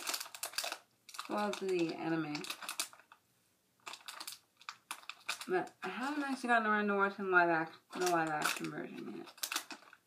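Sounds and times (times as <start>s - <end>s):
packaging rustling and crinkling: 0.0s - 3.2s, 3.8s - 6.6s, 7.9s - 10.0s.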